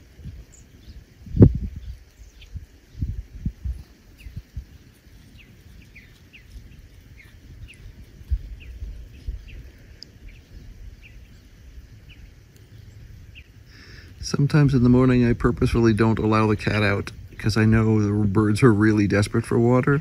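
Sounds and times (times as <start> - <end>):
birds chirping: 0.0 - 20.0.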